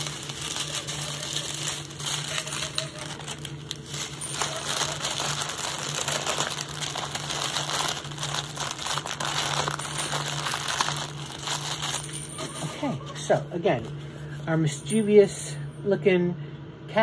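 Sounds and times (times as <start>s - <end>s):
plastic bags crinkling: 0.0s - 13.3s.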